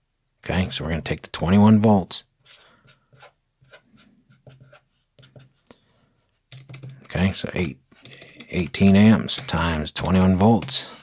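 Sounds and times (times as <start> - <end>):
marker scratching on paper: 2.4 - 5.7.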